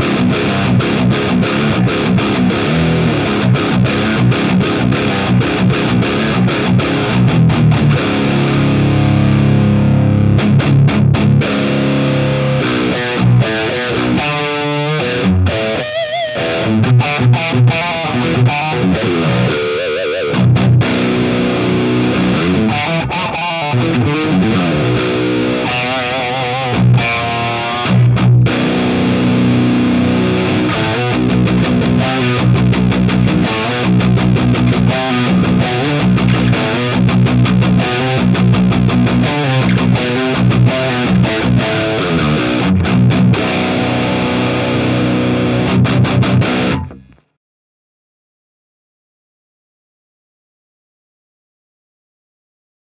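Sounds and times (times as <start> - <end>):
distorted electric guitar: 0.0 - 47.4.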